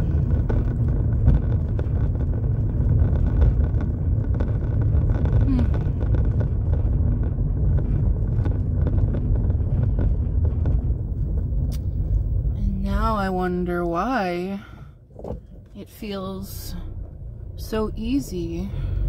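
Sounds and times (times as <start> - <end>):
knocks and rattles: 0.0 - 12.6
car road noise rumble: 0.0 - 19.0.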